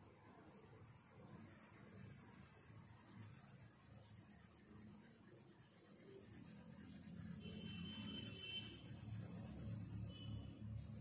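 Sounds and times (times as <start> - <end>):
coloured pencil scratching on paper: 0.1 - 11.0.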